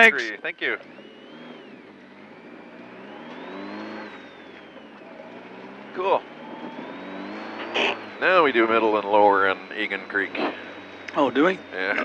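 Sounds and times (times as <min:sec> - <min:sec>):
car engine from inside cabin: 0:00.0 - 0:12.0.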